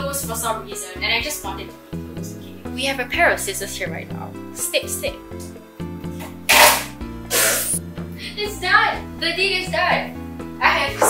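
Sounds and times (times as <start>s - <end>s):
background music with steady beat: 0.0s - 11.0s
sticky tape pulled off roll: 6.2s - 7.8s.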